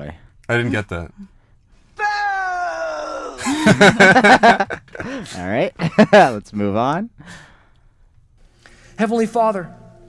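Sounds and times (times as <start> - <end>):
person laughing: 3.4 - 6.3.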